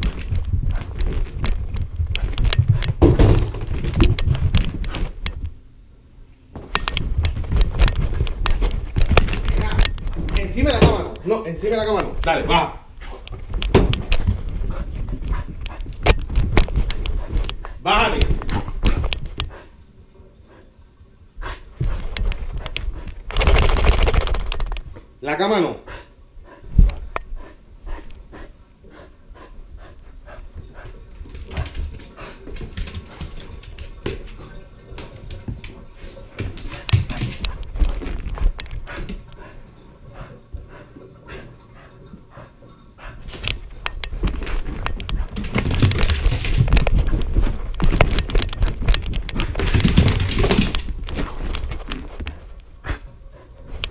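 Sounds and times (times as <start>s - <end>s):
dog paws thudding: 6.6s - 19.6s, 29.8s - 39.6s, 43.3s - 53.1s
dog panting: 14.3s - 16.0s, 25.8s - 33.6s, 38.7s - 44.0s.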